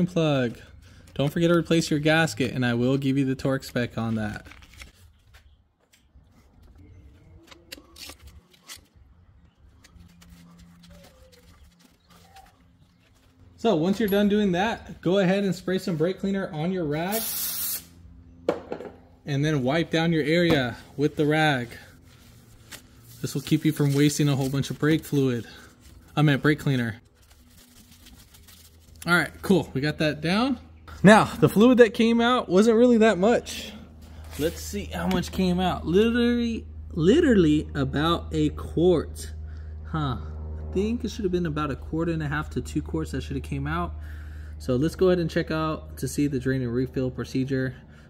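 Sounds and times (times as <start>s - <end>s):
low steady hum: 6.2s - 48.0s.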